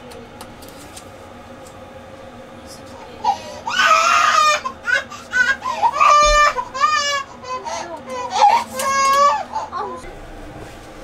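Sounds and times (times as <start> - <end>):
baby crying: 3.2 - 10.0.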